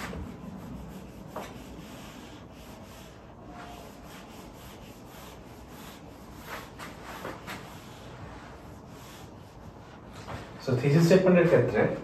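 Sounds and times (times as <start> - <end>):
eraser rubbing on whiteboard: 0.0 - 10.5.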